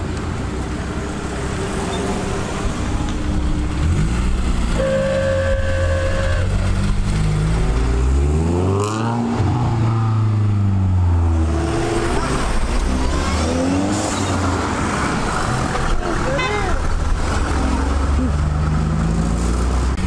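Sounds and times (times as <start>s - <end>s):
car engines pulling away: 0.0s - 20.0s
car engine revving: 2.5s - 20.0s.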